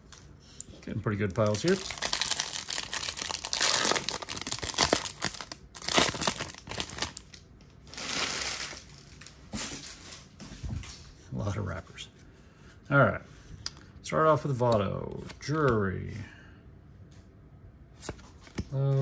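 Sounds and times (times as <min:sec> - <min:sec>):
plastic wrapper tearing and crinkling: 0:01.3 - 0:10.0
cards rustling: 0:01.4 - 0:07.3.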